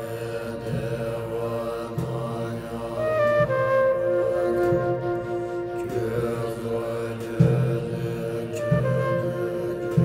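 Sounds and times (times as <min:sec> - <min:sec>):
low chanted mantra: 0:00.0 - 0:10.0.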